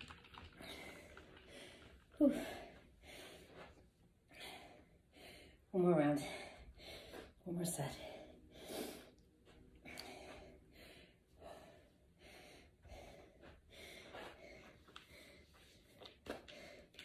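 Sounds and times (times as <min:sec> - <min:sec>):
woman breathing hard: 0:00.6 - 0:07.4, 0:08.0 - 0:17.0.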